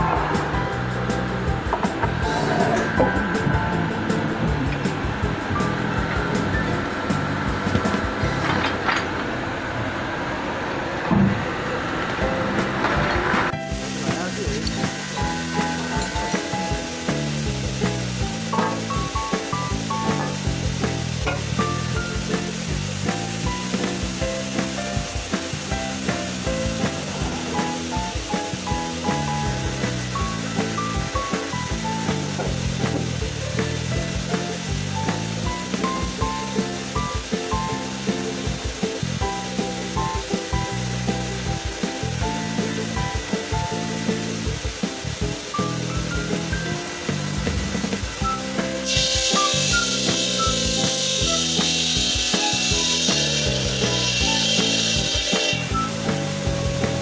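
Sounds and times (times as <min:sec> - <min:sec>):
background music: 0:00.0 - 0:08.9, 0:12.2 - 0:57.0
saw cutting marble hiss: 0:13.6 - 0:57.0.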